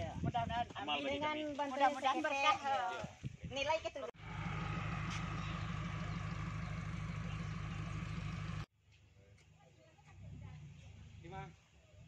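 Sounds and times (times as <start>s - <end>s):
vehicle engine running: 4.2s - 8.7s.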